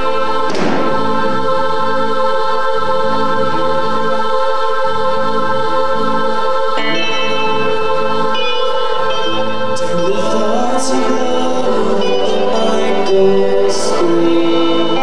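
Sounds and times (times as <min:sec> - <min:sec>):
electric guitar: 0:05.3 - 0:15.0.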